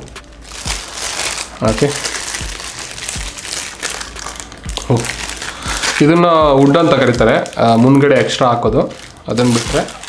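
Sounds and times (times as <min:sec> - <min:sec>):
plastic wrap crinkling: 0:00.0 - 0:10.0.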